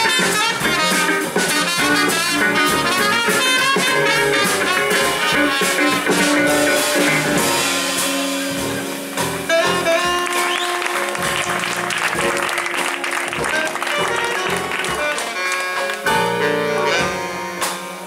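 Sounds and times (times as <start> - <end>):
funk jazz band playing: 0.0 - 18.0
audience applause: 9.1 - 16.5.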